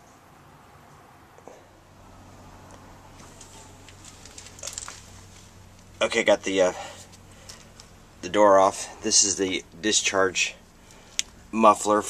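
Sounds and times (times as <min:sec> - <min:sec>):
handling clicks and rattles: 0:03.2 - 0:05.9.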